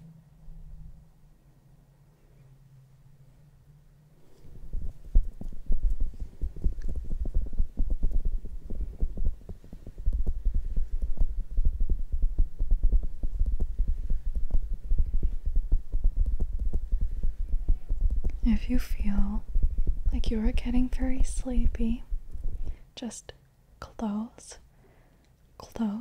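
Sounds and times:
soft thumps and rubbing on microphone: 0:04.2 - 0:22.8.

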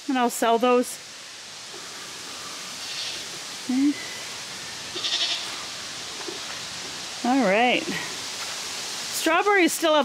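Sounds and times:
faint outdoor hiss: 0:00.0 - 0:10.0
farm animal bleating: 0:02.8 - 0:03.2, 0:04.9 - 0:05.7.

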